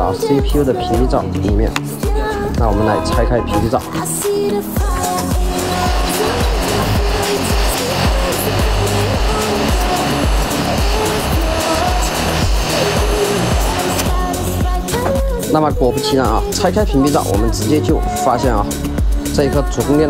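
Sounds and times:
background music with steady beat: 0.0 - 20.0
hot air gun blowing: 4.6 - 18.0.

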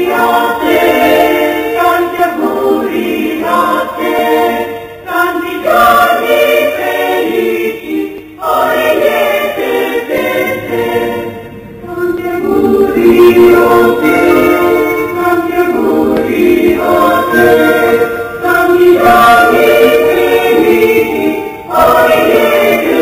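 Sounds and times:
choir singing: 0.0 - 23.0.

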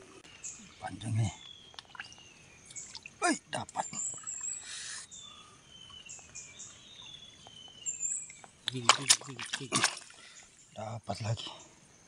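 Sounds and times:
hand squelching in wet mud: 8.6 - 10.3.

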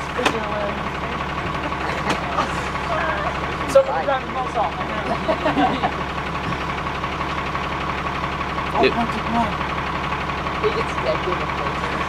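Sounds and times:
bus engine running: 0.0 - 12.0.

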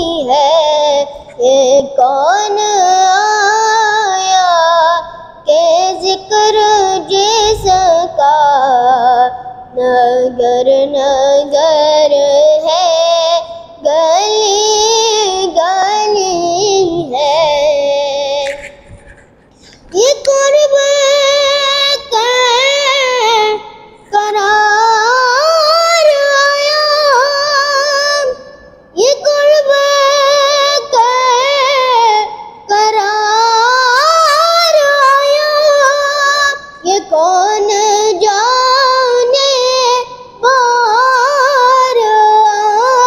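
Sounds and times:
boy singing solo: 0.0 - 18.6, 19.8 - 43.0.

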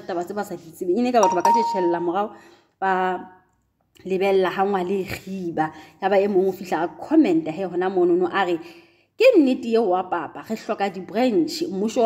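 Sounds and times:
steady high tone: 1.2 - 2.2
person speaking: 1.2 - 2.3.

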